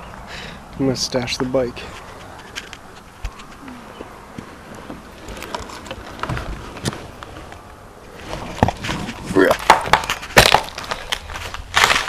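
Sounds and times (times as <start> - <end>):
low rustling: 0.0 - 12.0.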